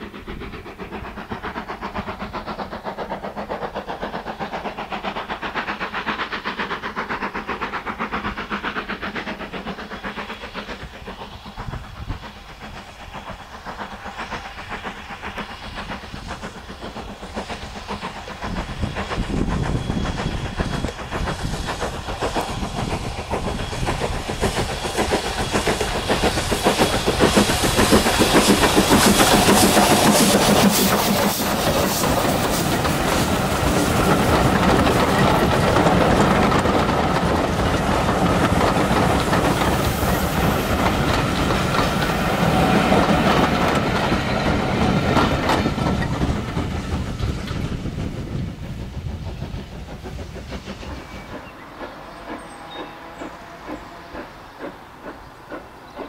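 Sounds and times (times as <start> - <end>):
steam hissing: 0.0 - 56.0
steam locomotive exhaust beats: 0.0 - 56.0
train wheels clattering on rails: 0.0 - 56.0.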